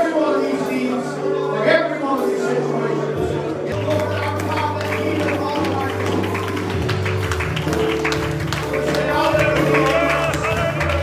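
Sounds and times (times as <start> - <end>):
keyboard chords: 0.0 - 11.0
voices praying: 8.7 - 11.0.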